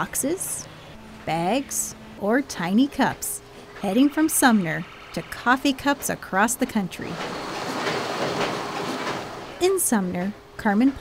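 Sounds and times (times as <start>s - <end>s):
conveyor machinery clattering: 3.8s - 11.0s.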